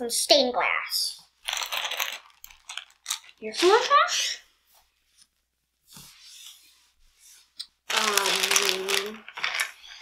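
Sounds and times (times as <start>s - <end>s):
plastic packaging crinkling: 1.4s - 3.9s, 7.9s - 10.0s.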